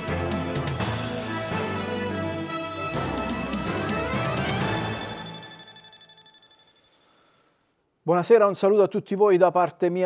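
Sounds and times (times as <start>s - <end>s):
news theme music: 0.0s - 7.0s.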